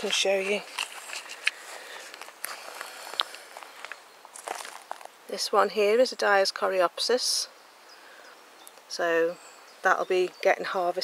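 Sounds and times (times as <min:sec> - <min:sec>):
footsteps in a garden: 0:00.0 - 0:05.4.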